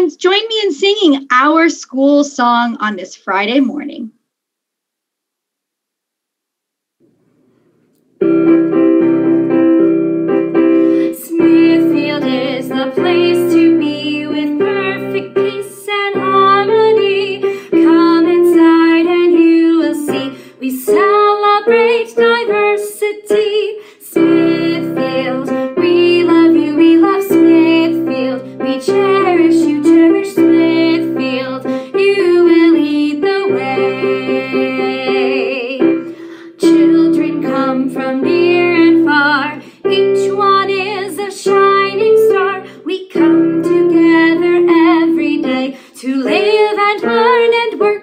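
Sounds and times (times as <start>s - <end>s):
electric piano chords: 8.2s - 23.6s
woman singing: 10.9s - 48.0s.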